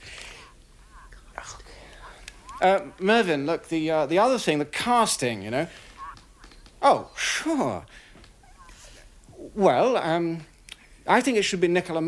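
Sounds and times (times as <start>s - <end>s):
faint whispering: 0.0s - 3.7s, 5.6s - 9.5s.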